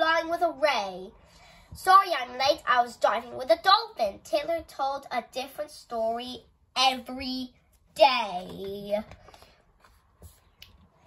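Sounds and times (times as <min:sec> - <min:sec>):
book page turning: 0:08.4 - 0:10.8.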